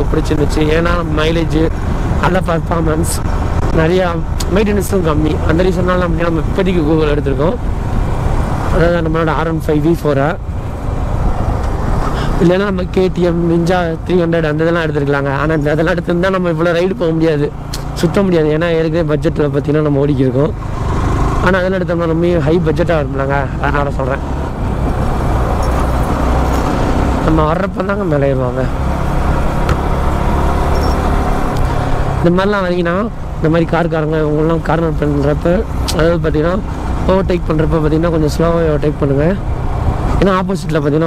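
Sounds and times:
motorcycle engine rumble: 0.0s - 41.0s
road noise: 0.0s - 41.0s
wind noise: 23.6s - 27.3s.

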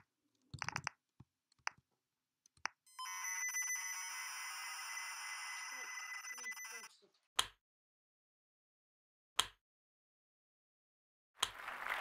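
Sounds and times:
keyboard clicks: 0.5s - 1.8s.

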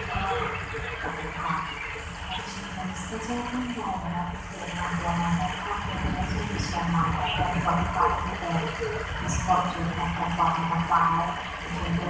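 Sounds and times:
faint distant voices: 0.0s - 12.0s
noisy background haze: 0.0s - 12.0s
steady low hum: 0.0s - 12.0s.

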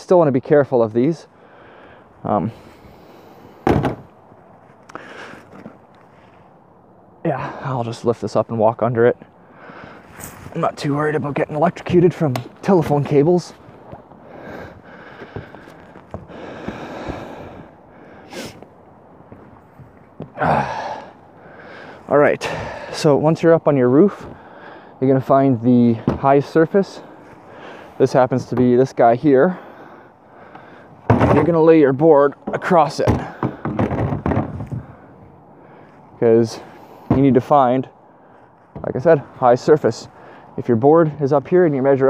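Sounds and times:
person breathing: 1.3s - 3.7s, 4.9s - 6.6s, 9.4s - 10.4s, 14.1s - 18.8s, 20.4s - 23.1s, 24.2s - 25.0s, 27.0s - 28.0s, 29.5s - 31.1s, 34.7s - 37.1s, 38.0s - 38.7s, 40.1s - 40.6s
wooden board knocking and scraping: 3.6s - 4.1s, 31.1s - 31.6s, 32.4s - 35.0s
soft rustling: 4.5s - 6.6s, 10.0s - 17.3s.

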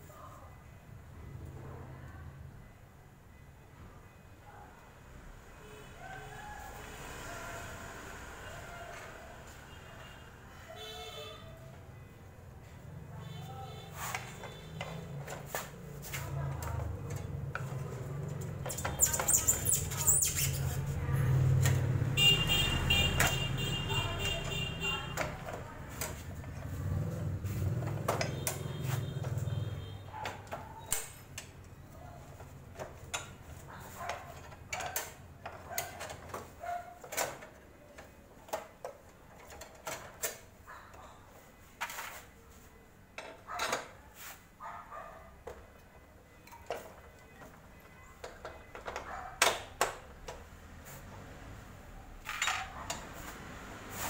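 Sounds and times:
metal parts clinking and knocking: 52.3s - 52.7s.

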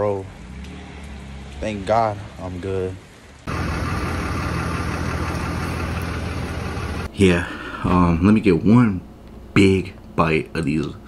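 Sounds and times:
truck engine idling: 3.5s - 7.1s.

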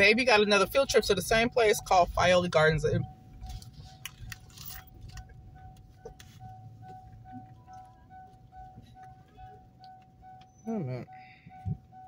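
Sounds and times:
electronic car chime beeps: 0.0s - 4.0s, 4.6s - 12.0s.

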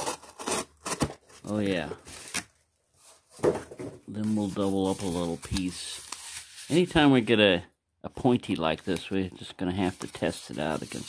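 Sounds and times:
cardboard and knife handling: 0.0s - 6.8s.

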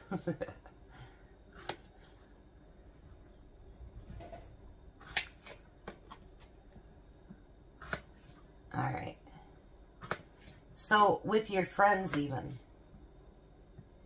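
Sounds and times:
knife cutting on plastic board: 1.5s - 1.9s, 5.0s - 6.5s, 7.8s - 8.3s.

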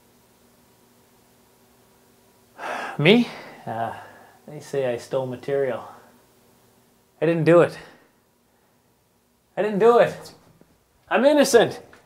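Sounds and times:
faint steady hum: 0.0s - 12.0s
person gasping: 2.6s - 4.4s.

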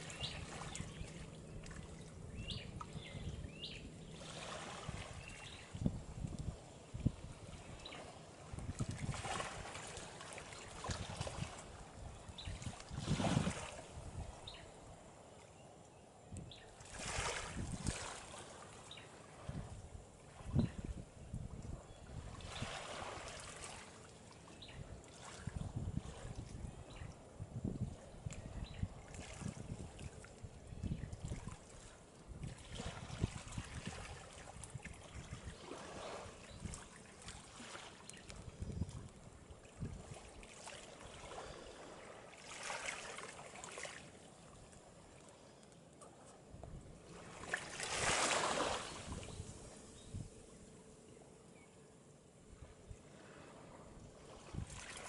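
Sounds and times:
small waves washing ashore: 0.0s - 15.4s, 16.7s - 20.6s, 22.1s - 27.4s, 29.0s - 30.5s, 31.2s - 51.1s, 52.6s - 55.0s.

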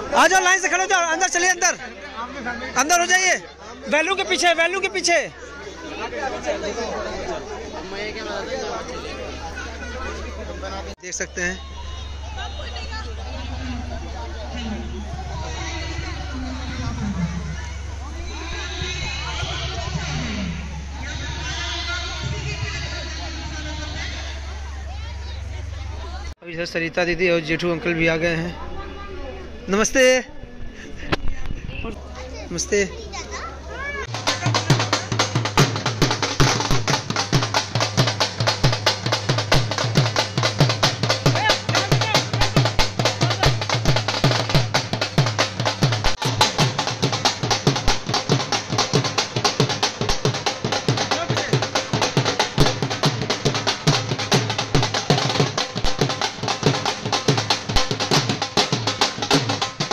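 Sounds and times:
crowd chatter: 0.0s - 59.9s
people's voices: 0.0s - 59.9s
children's voices: 32.0s - 34.1s
drum beaten with sticks: 34.0s - 59.9s.

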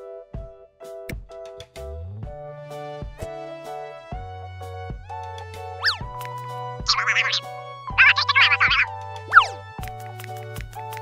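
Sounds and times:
background music with bass line: 1.1s - 11.0s
high warbling sound effect: 5.8s - 6.0s, 6.9s - 9.5s.

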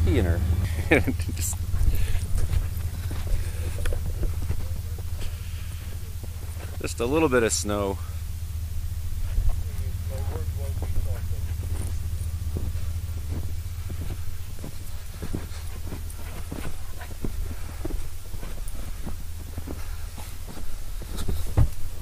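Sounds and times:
footsteps through deep snow: 0.0s - 22.0s
steady low rumble: 0.0s - 22.0s.

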